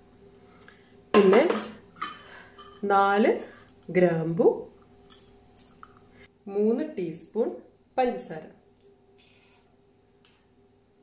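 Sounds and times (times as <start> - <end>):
metal utensils clinking on saucepan: 1.2 - 4.0
woman speaking: 2.8 - 4.7, 6.5 - 8.6.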